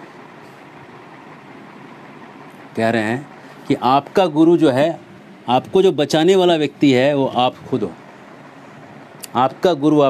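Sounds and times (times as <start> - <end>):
steady hiss-like rumble: 0.0 - 10.0.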